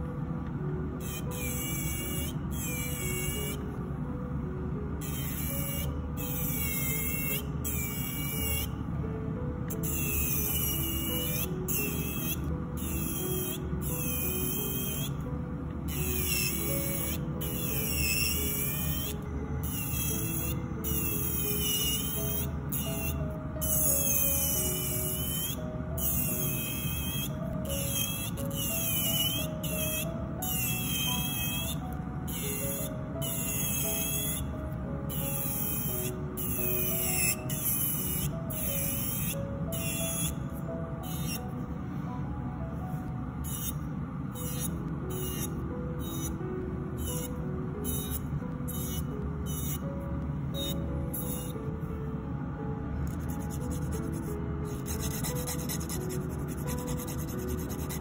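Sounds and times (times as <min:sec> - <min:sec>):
background music: 0:00.0 - 0:58.0
electric nail file whining: 0:01.0 - 0:03.7, 0:05.0 - 0:08.8, 0:09.7 - 0:41.6, 0:43.4 - 0:46.4, 0:47.0 - 0:49.9, 0:50.5 - 0:51.6, 0:53.1 - 0:58.0.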